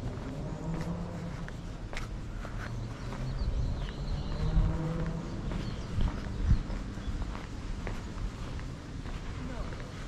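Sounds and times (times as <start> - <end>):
footsteps on paved path: 0.0 - 10.0.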